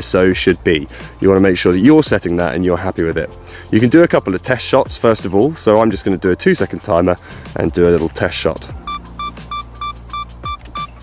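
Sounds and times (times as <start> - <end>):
camera self-timer beeping: 8.9 - 10.9.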